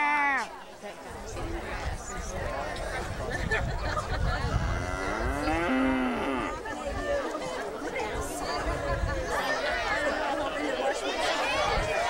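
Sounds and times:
crowd chatter: 0:00.0 - 0:12.0
cow mooing: 0:04.7 - 0:06.6.

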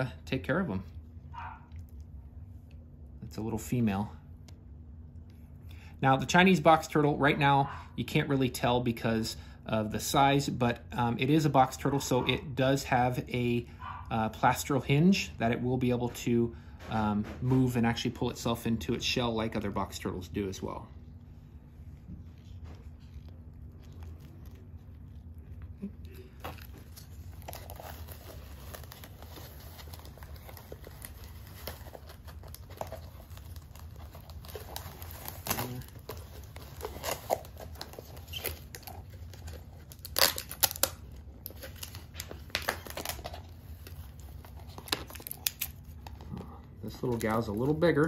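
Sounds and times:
plastic and wrap crinkling: 0:20.6 - 0:48.0.

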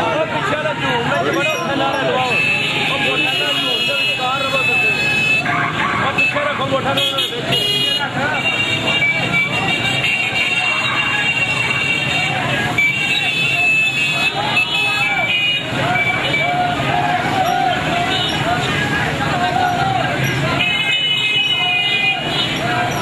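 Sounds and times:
horns tooting: 0:00.0 - 0:23.0
motorcycle and car engines: 0:00.0 - 0:23.0
raised voices: 0:00.0 - 0:23.0.

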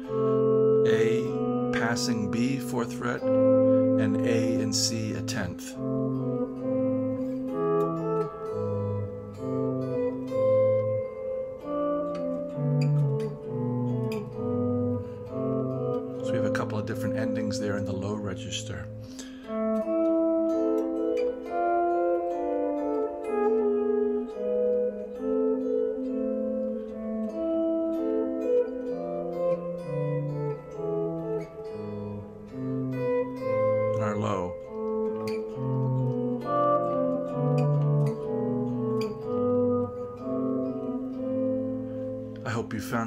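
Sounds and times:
electric guitar plucked notes: 0:00.0 - 0:43.0.

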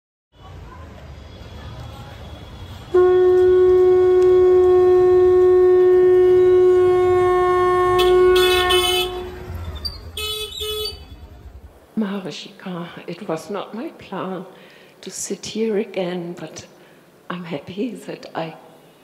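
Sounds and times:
street noise rumble: 0:00.3 - 0:14.4
conch shell blowing: 0:02.9 - 0:11.3.

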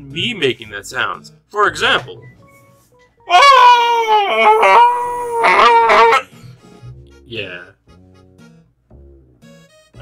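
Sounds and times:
man screaming like a creature: 0:03.3 - 0:06.3.

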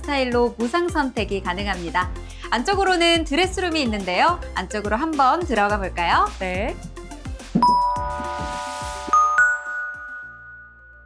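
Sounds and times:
bell-like chime: 0:07.6 - 0:11.0.

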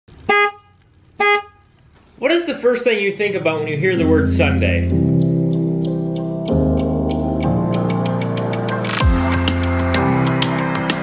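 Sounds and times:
truck horn short blasts: 0:00.2 - 0:01.6.

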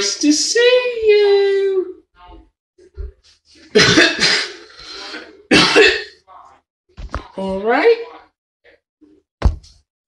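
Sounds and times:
person coughing: 0:03.7 - 0:06.2.

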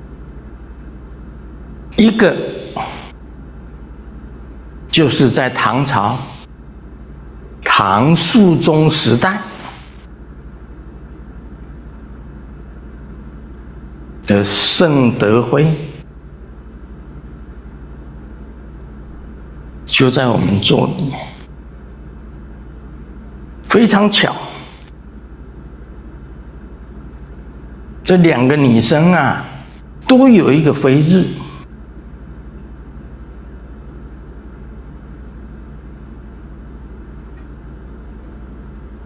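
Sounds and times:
low hum: 0:00.0 - 0:39.0
low room rumble with flutter: 0:00.0 - 0:39.0.

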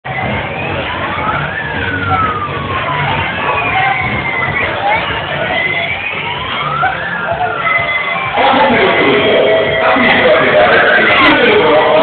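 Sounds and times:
fairground din: 0:00.0 - 0:12.0
siren-like gliding tones: 0:00.1 - 0:12.0.

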